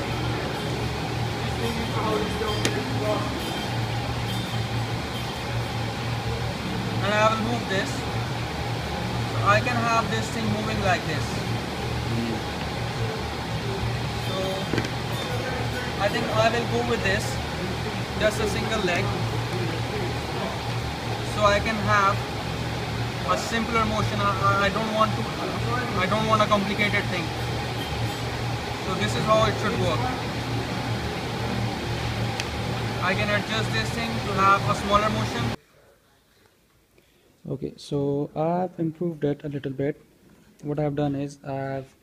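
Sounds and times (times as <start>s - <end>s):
low background hum: 0.0s - 42.0s.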